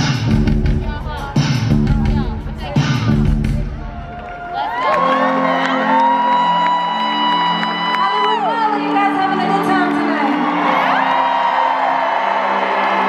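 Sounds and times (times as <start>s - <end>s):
live band music: 0.0s - 5.3s
crowd whooping: 3.9s - 8.6s, 10.3s - 13.0s.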